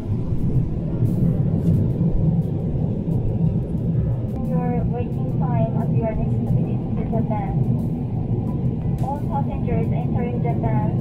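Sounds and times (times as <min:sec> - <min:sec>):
airplane cabin drone: 0:00.0 - 0:11.0.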